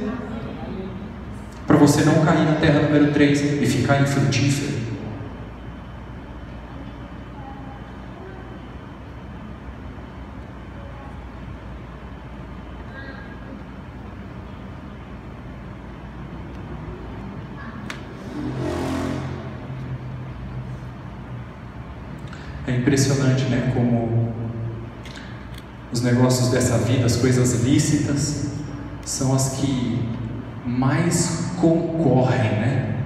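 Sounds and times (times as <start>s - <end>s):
low hum: 0.0s - 33.0s
rush of noise: 15.3s - 25.4s.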